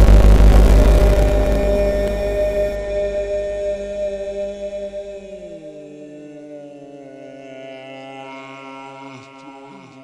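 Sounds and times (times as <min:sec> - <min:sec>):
higher held tones: 0:00.0 - 0:07.1
low chanted drone: 0:00.0 - 0:10.0.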